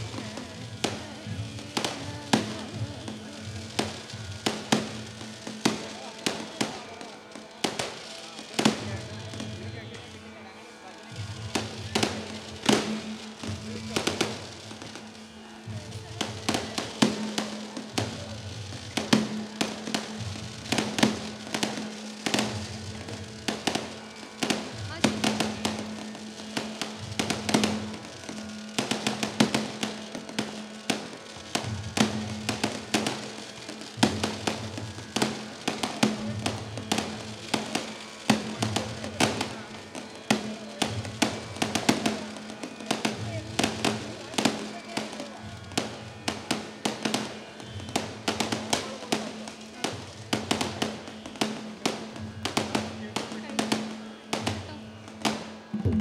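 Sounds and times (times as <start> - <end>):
fireworks bursting: 0.0 - 56.0.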